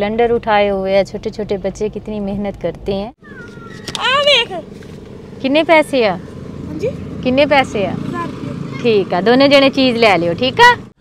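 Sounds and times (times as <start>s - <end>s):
car hum: 0.0s - 11.0s
child calling out: 3.2s - 4.7s.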